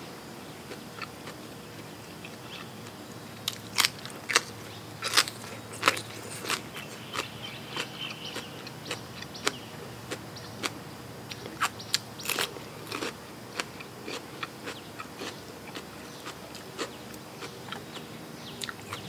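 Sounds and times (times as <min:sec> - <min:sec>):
chewing crisp raw vegetables: 0:00.6 - 0:19.0.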